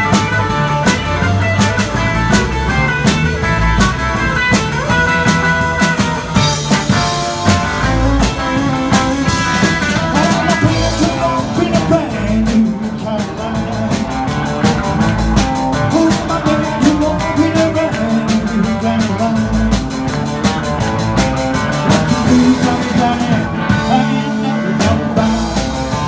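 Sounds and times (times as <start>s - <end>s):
drum kit beat: 0.0s - 26.0s
electric guitars: 0.0s - 26.0s.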